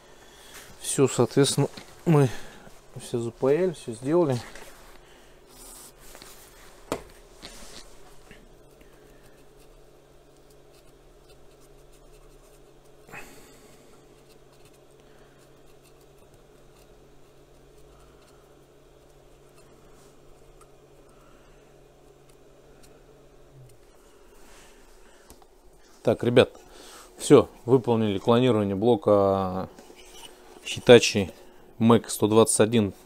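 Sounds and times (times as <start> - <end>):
steady low hum: 0.0 - 33.0
swab scratching circuit board: 9.3 - 13.0.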